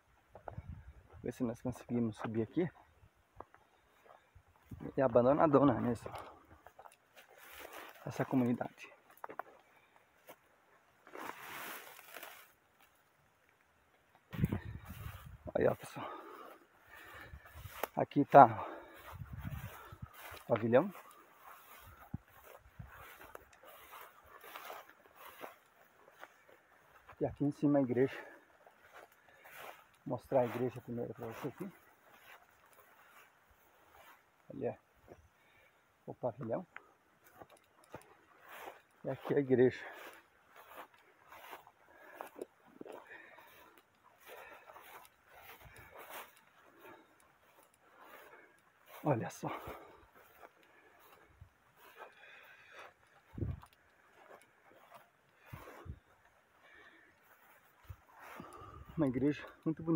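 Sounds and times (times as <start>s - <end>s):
footsteps through grass: 0.0s - 59.9s
rustling of tall grass: 0.0s - 59.9s.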